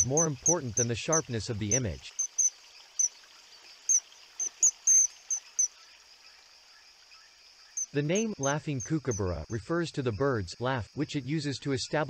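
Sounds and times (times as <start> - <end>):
kingfisher shrill calls: 0.0 - 3.1, 3.9 - 5.7
faint steady high hiss: 0.0 - 12.0.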